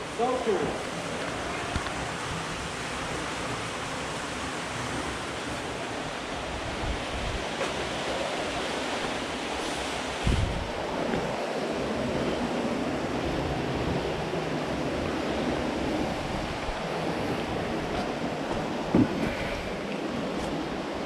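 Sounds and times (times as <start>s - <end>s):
stream water rushing: 0.0s - 21.0s.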